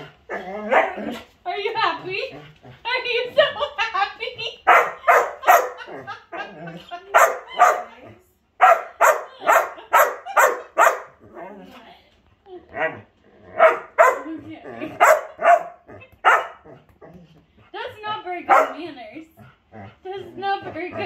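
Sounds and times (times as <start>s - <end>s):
dog barking: 4.6s - 5.9s, 7.1s - 8.0s, 8.6s - 11.2s, 13.6s - 14.3s, 15.0s - 16.8s, 18.5s - 18.8s.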